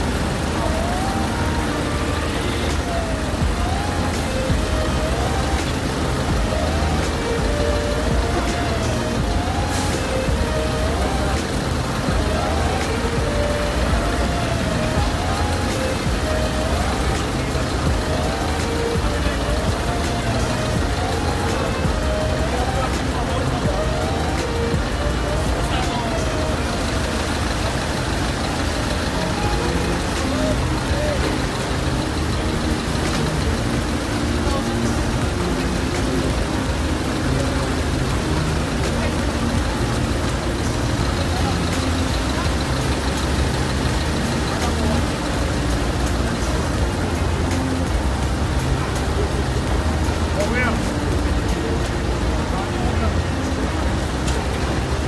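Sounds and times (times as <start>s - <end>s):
indistinct voices: 0.0s - 55.0s
vehicle engines rumbling: 0.0s - 55.0s
wavering tone: 0.0s - 55.0s.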